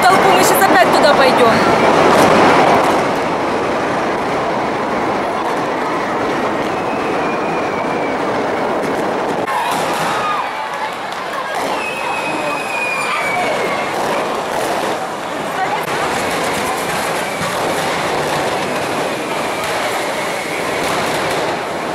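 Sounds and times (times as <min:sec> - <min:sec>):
falling firework whistles: 0:06.4 - 0:15.1, 0:16.2 - 0:21.8
firework rockets hissing and whooshing: 0:09.0 - 0:21.9.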